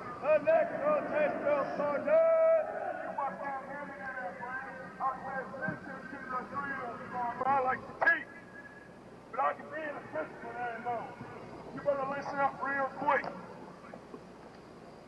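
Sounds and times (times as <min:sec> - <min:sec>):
person shouting commands: 0:00.2 - 0:03.4.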